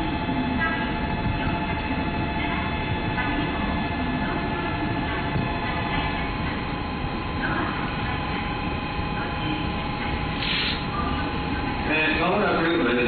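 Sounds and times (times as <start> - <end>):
distant train: 0.0 - 13.0
distant voices: 0.0 - 13.0
steady tonal hum: 0.0 - 13.0.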